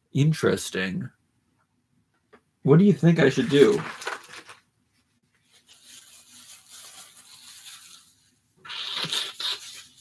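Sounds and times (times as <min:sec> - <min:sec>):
rubbing and rustling in hands: 0:03.2 - 0:10.0.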